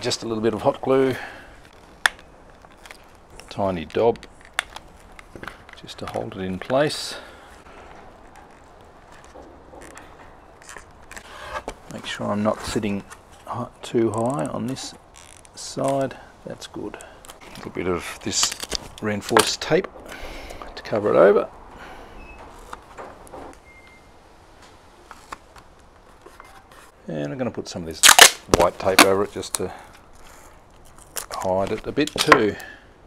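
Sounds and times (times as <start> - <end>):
handling noise on foam: 0.0 - 20.0, 22.3 - 27.0.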